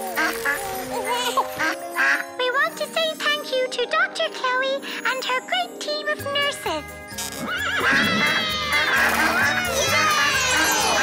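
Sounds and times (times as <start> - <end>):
background music with bass: 6.8 - 11.0
cartoon horse neighing: 7.4 - 10.5.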